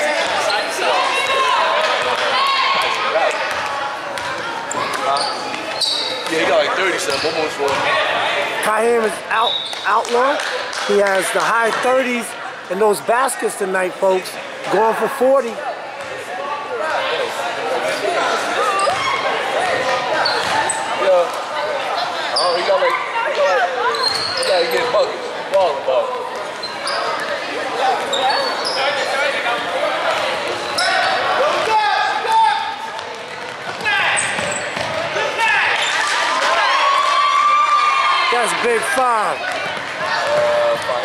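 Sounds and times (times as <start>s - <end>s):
sneakers squeaking: 0.0s - 8.2s, 9.0s - 10.2s, 18.3s - 21.4s, 22.2s - 29.4s, 30.0s - 36.2s
voices echoing in gym: 0.0s - 41.0s.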